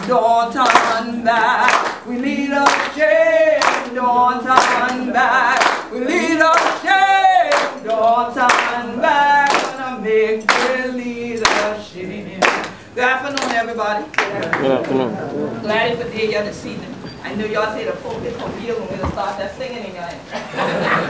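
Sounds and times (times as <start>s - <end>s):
voices singing: 0.0s - 21.0s
hands clapping in time: 0.6s - 1.0s, 1.7s - 2.0s, 2.6s - 3.0s, 3.6s - 3.9s, 4.6s - 5.0s, 5.6s - 5.8s, 6.5s - 6.8s, 7.5s - 7.9s, 8.5s - 8.8s, 9.4s - 9.8s, 10.5s - 10.8s, 11.4s - 11.7s, 12.4s - 12.8s.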